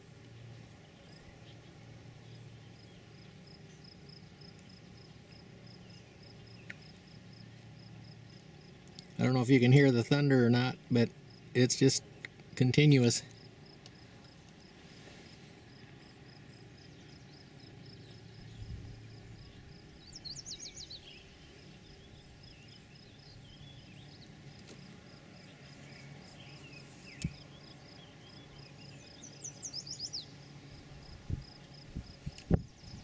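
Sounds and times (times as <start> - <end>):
insect chirping: 11.3 - 11.5, 13.4 - 14.7, 15.6 - 24.2.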